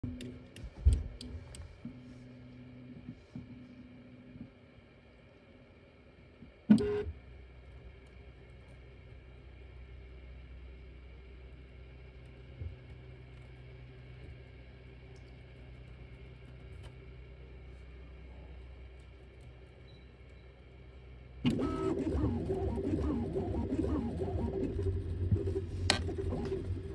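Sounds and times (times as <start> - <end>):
cooling fans humming: 0.0 - 26.9.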